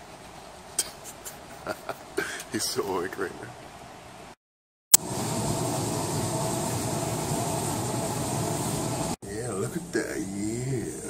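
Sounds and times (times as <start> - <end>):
treadmill belt rumble: 5.0 - 9.2
treadmill motor whine: 5.0 - 9.2.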